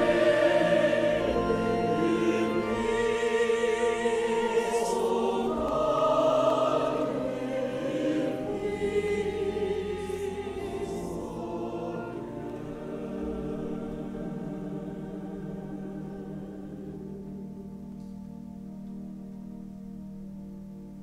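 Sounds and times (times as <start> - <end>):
church choir singing: 0.0 - 19.0.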